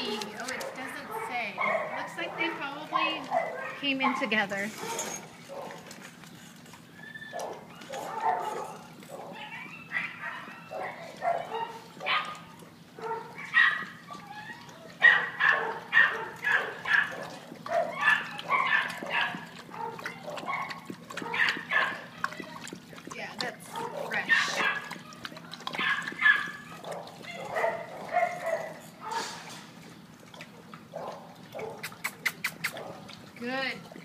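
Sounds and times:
dogs barking: 0.0s - 5.9s, 7.3s - 29.6s, 30.3s - 33.3s.

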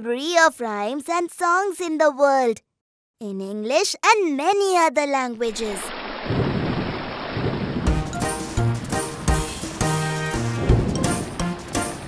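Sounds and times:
low rolling thunder: 6.2s - 12.0s
music: 7.9s - 12.0s.

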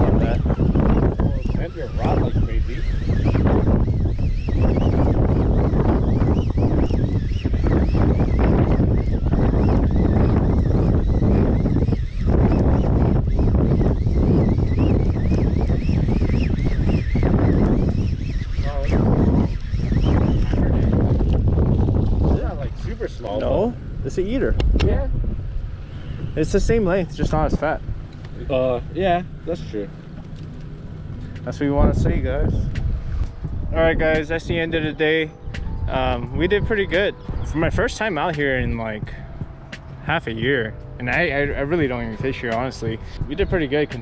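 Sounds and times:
wind rumbling on microphone: 0.0s - 44.0s.

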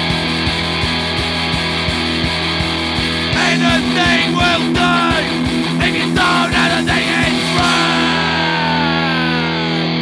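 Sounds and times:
distorted electric guitar chord: 0.0s - 10.0s.

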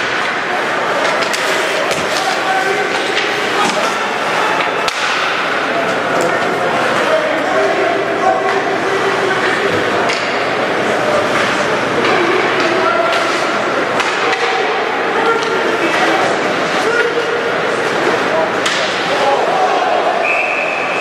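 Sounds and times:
hockey sticks clacking on puck: 0.0s - 19.6s
murmur of spectators talking: 0.0s - 21.0s.

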